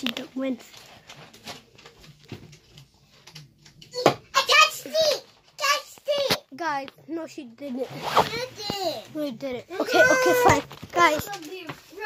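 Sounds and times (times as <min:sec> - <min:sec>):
child's excited high voice: 0:04.0 - 0:06.4, 0:09.7 - 0:11.5.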